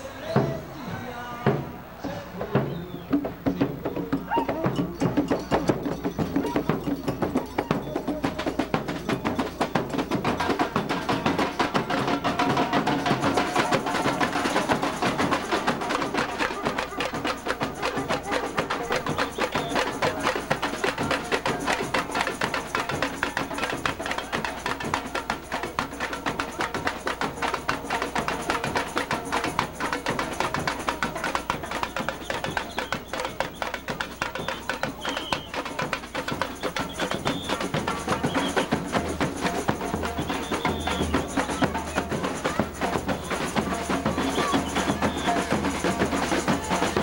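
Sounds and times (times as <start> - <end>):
samba drum section playing: 0.0 - 47.0.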